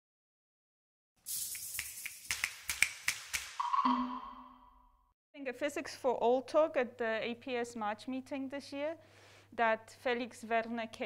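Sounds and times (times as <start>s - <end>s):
ringing chime tone: 3.6s - 4.8s.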